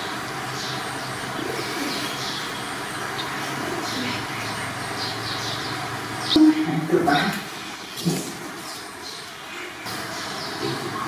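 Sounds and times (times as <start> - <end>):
birds chirping: 0.0 - 11.0
steady background hum: 0.0 - 11.0.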